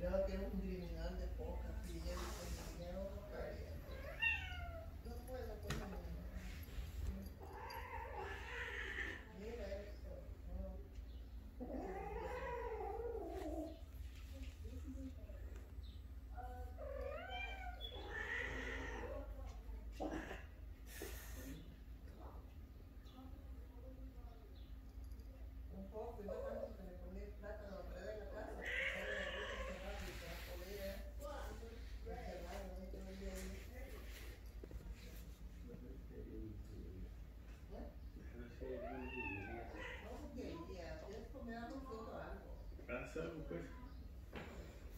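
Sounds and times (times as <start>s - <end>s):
cat yowling: 3.9s - 5.0s, 7.4s - 9.4s, 11.6s - 13.7s, 16.4s - 19.3s, 28.6s - 30.0s, 38.8s - 40.3s.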